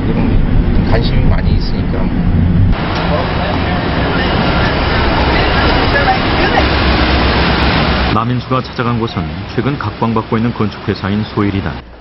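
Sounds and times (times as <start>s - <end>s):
traffic noise: 0.0s - 12.0s.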